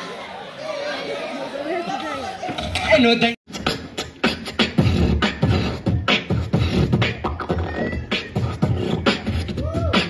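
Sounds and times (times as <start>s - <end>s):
beatboxing into a microphone: 2.6s - 10.0s.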